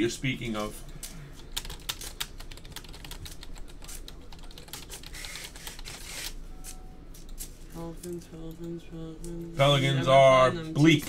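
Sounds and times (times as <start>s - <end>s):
computer keyboard typing: 1.0s - 6.3s.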